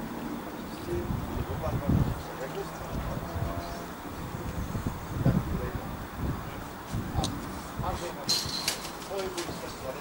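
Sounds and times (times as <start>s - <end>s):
wind noise on microphone: 0.0s - 9.8s
distant voices: 0.0s - 10.0s.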